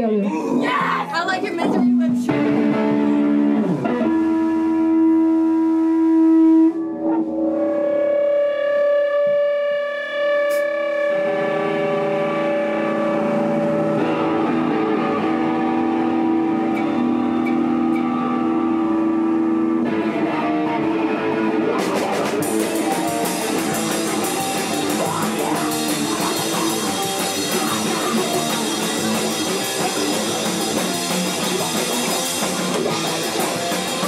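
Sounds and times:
distorted electric guitar notes: 0:00.0 - 0:34.0.

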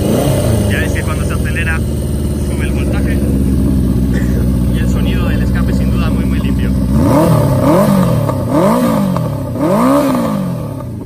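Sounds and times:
motorcycle engine revving: 0:00.0 - 0:11.0.

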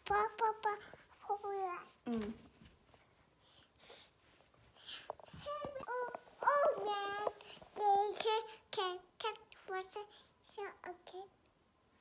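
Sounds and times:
toddler sing-song vocalizing: 0:05.2 - 0:11.2.

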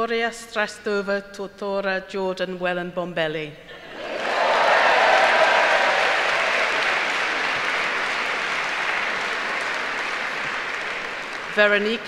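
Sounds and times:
audience applauding: 0:03.9 - 0:12.0.

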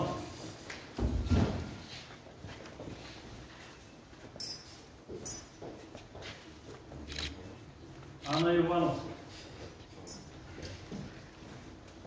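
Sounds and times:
footsteps on floor: 0:00.0 - 0:08.2, 0:09.0 - 0:12.0.

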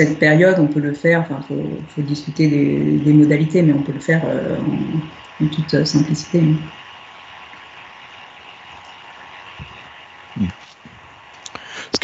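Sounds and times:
faint line hiss and hum: 0:00.0 - 0:12.0.

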